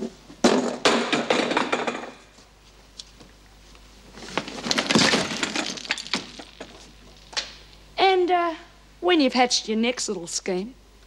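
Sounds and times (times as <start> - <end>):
objects clattering on floor: 0.0 - 2.4, 4.2 - 7.6
table crashing over: 0.4 - 2.2, 4.3 - 7.6.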